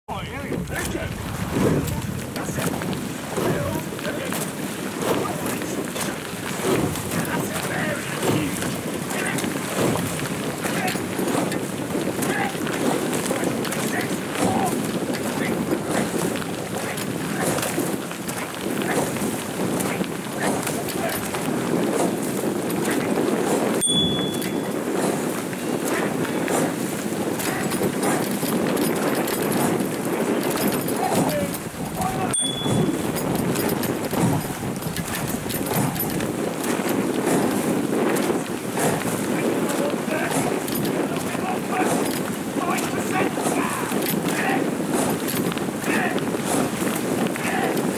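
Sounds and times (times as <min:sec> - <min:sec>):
running footsteps on path: 0:00.1 - 0:47.9
wind on microphone: 0:00.1 - 0:47.9
oar blades splashing water: 0:00.4 - 0:47.9.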